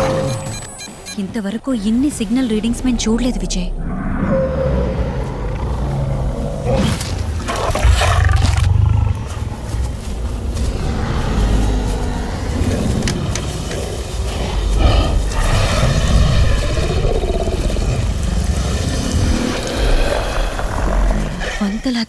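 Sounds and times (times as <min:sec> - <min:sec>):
low rumbling music score: 0:00.0 - 0:21.9
heavy low rumble: 0:00.0 - 0:22.0
monster growls and roars: 0:03.0 - 0:22.0.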